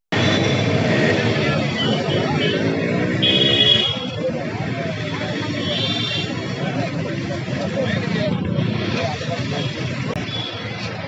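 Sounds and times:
auto-rickshaw engine running: 0.1s - 11.0s
street traffic: 0.1s - 11.0s
people talking: 0.2s - 11.0s.

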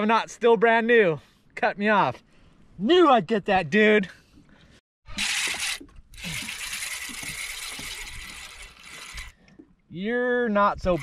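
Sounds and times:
fishing reel cranking and clicking: 5.1s - 9.4s.

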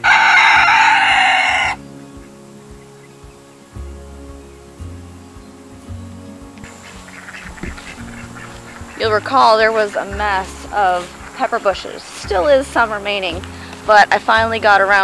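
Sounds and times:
rooster crowing: 0.0s - 1.8s
background music: 0.0s - 15.0s.

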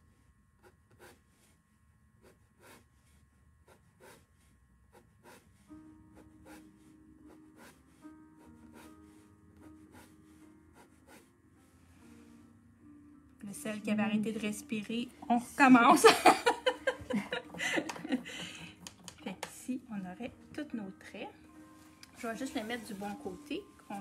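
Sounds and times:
faint held musical tones: 5.6s - 24.0s.

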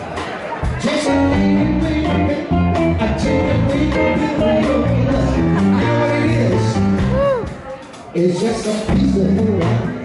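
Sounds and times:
bass line: 0.6s - 7.6s, 8.5s - 10.0s
electric guitar: 0.6s - 7.6s.

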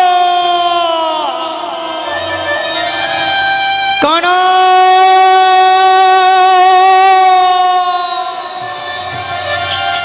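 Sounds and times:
man singing long high note: 0.0s - 2.9s, 4.0s - 9.5s.

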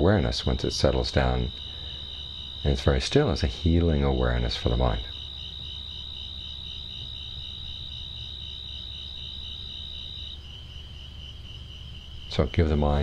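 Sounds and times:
cricket pulsed chirping: 0.0s - 13.0s
low steady hum: 0.0s - 13.0s.

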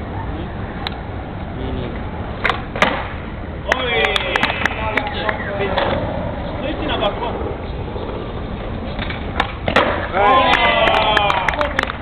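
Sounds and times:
skateboard clacks: 2.4s - 6.0s, 7.4s - 12.0s
voices: 3.6s - 12.0s
skateboard rolling on hard court: 4.4s - 10.4s.

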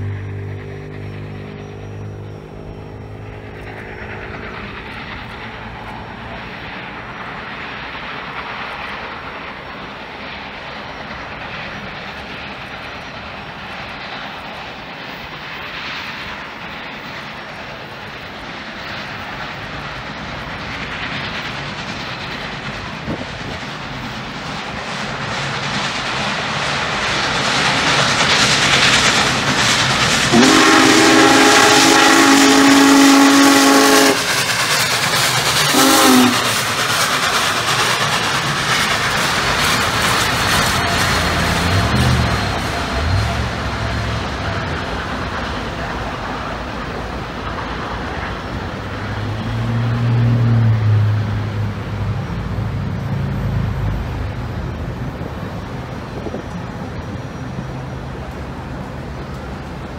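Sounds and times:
steam locomotive running: 0.0s - 59.9s
train rolling on rails: 0.0s - 59.9s
steam whistle blasts: 30.3s - 34.3s, 35.7s - 36.6s.

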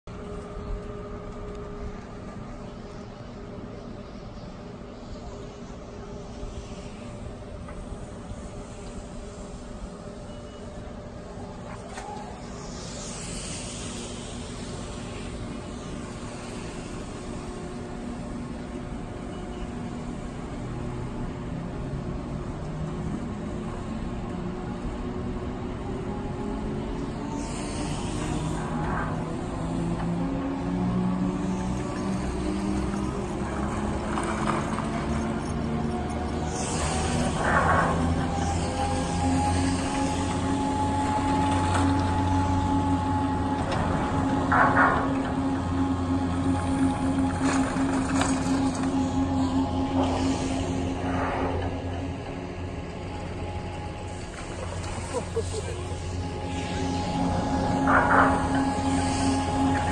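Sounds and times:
chairlift drive whine rising: 0.0s - 59.9s.

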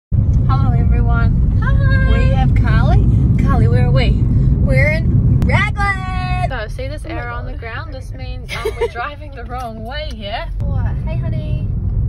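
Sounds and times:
car engine rumble: 0.1s - 12.0s
road noise: 0.1s - 12.0s.

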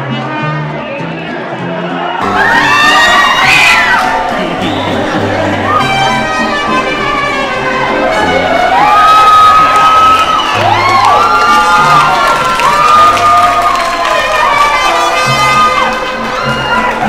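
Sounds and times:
background music: 0.0s - 17.0s
crowd cheering and screaming: 1.4s - 17.0s
high-pitched shrieks: 2.2s - 17.0s.

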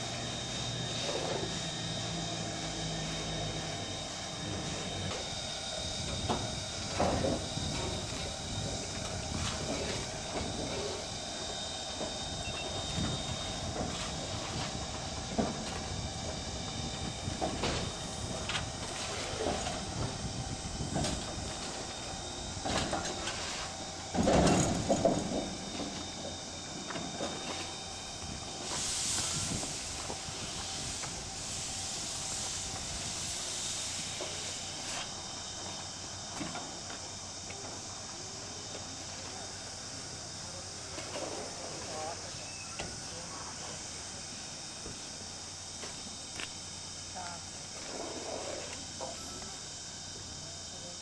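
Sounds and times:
steam hissing: 0.0s - 51.0s
loud steam burst: 28.4s - 35.2s.

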